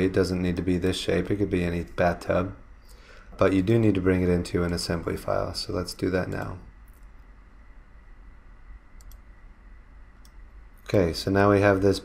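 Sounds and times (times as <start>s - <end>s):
faint room noise: 0.0s - 12.0s
computer mouse clicks: 9.0s - 9.3s, 10.2s - 10.9s.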